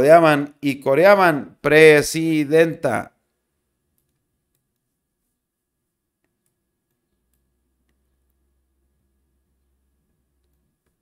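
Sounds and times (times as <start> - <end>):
man speaking: 0.0 - 3.2
computer mouse clicks: 3.9 - 4.9, 10.4 - 11.0.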